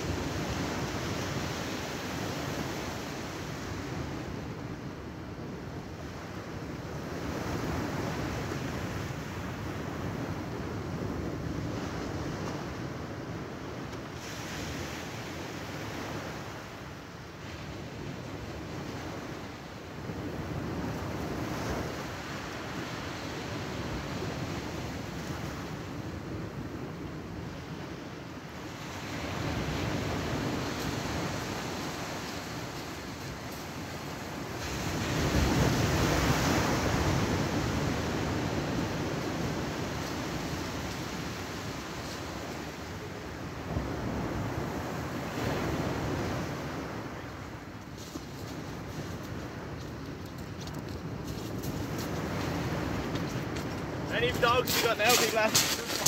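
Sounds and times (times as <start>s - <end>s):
surf washing onto a beach: 0.0s - 56.0s.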